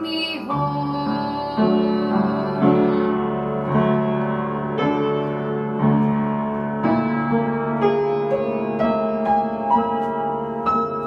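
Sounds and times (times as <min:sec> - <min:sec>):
hymn chords on piano: 0:00.0 - 0:11.0.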